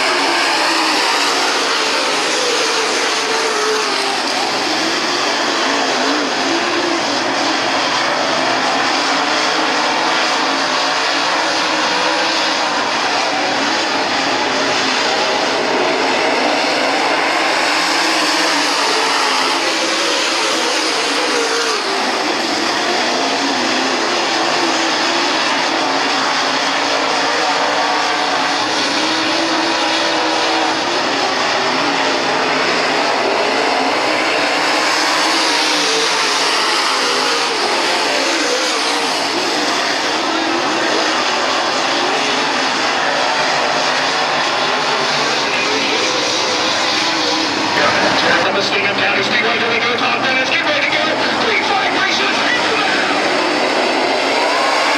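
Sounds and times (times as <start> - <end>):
race car engines racing: 0.0 - 54.9.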